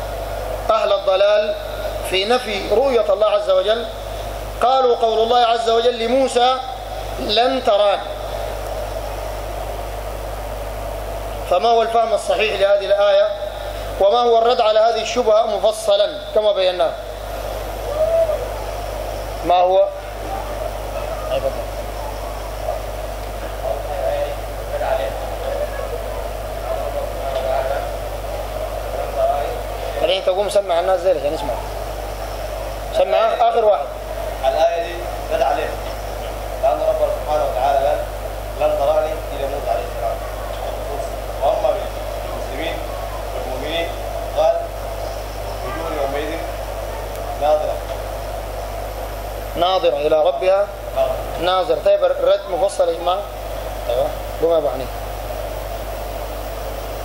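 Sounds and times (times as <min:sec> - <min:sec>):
mains hum and hiss: 0:00.0 - 0:57.0
distant man speaking: 0:19.4 - 0:31.9.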